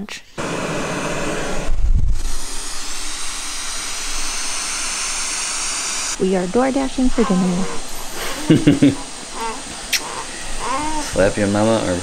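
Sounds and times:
white noise hiss: 0:00.0 - 0:12.0.

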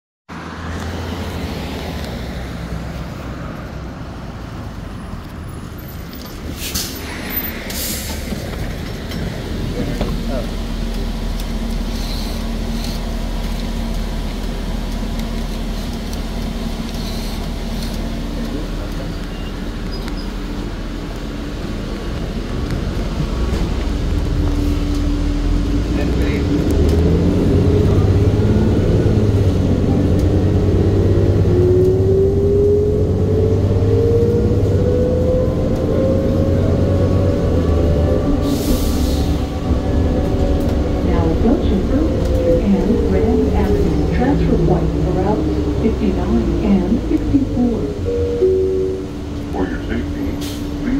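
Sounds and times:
bus engine humming: 0:00.3 - 0:50.9
rising engine whine: 0:06.9 - 0:50.9.

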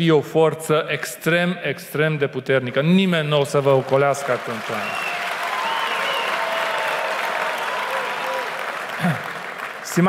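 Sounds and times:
audience applauding: 0:03.6 - 0:10.0.

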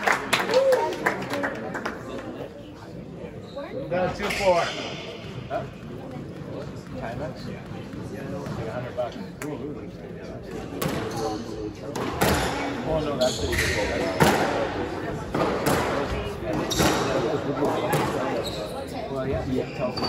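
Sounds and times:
squash rackets hitting ball: 0:15.3 - 0:17.1.

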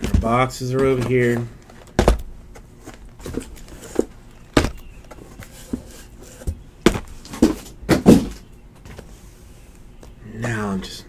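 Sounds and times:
boxes knocking and thudding: 0:00.0 - 0:09.1.

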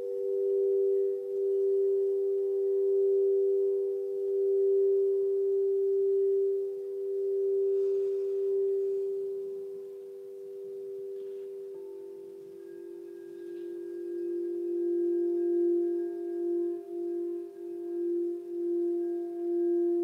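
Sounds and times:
singing bowl humming: 0:00.0 - 0:20.0.

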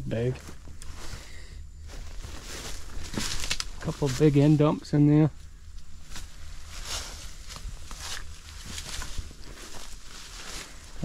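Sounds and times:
steady low rumble: 0:00.0 - 0:11.0
branches rustling and scraping: 0:00.1 - 0:11.0
footsteps through brush: 0:00.2 - 0:11.0.

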